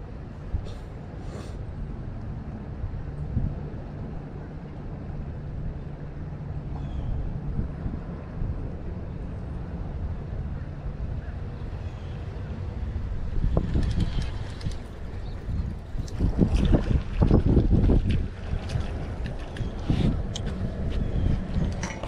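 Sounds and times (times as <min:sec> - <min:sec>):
wind buffeting microphone: 0:02.0 - 0:22.0.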